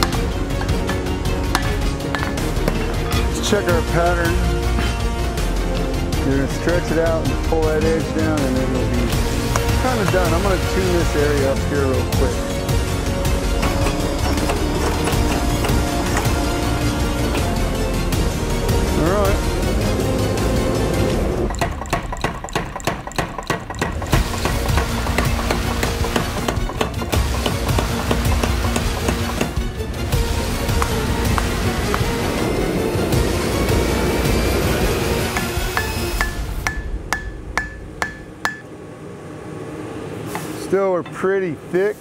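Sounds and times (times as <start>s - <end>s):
background music: 0.0s - 38.6s
power hammer striking hot steel: 21.5s - 29.7s, 34.2s - 38.7s
hand hammer ringing on anvil: 35.4s - 38.6s.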